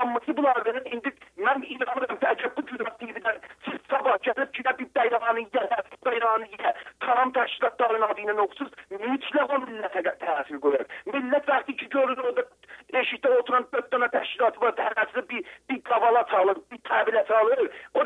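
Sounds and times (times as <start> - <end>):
person talking over telephone: 0.0 - 18.0.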